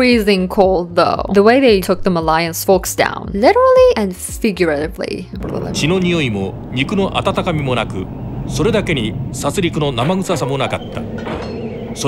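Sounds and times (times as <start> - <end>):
low steady rumble: 5.4 - 12.0.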